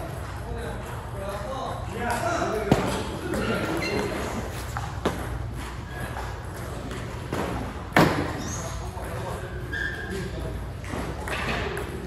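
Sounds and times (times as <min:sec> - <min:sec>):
table tennis ball hit: 0:04.8 - 0:05.7.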